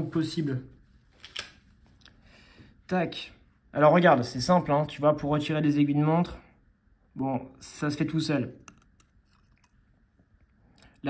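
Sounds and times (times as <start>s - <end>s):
watch tool clicking: 8.6s - 9.7s.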